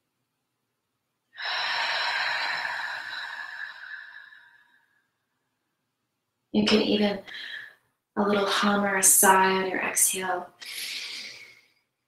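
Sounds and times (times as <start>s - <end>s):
deep breathy exhale: 1.4s - 4.9s.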